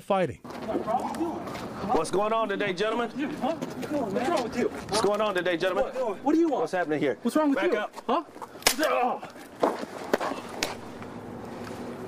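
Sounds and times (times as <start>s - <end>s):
pistol shots: 8.6s - 9.0s.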